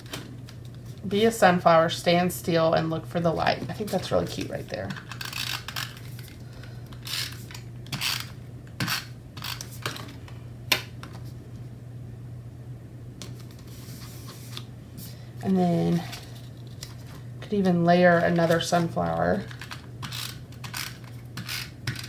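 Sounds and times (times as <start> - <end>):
adhesive tape runner on paper: 7.0 - 9.8, 19.5 - 22.0.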